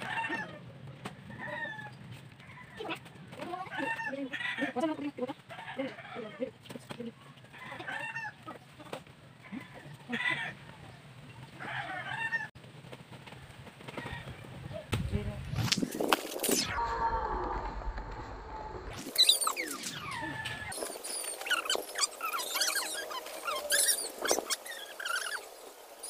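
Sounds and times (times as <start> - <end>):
chickens clucking: 0.0 - 12.6.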